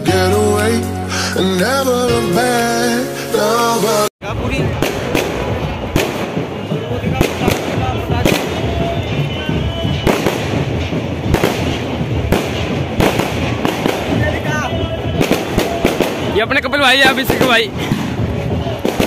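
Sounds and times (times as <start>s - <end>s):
fireworks bangs: 4.2s - 19.0s.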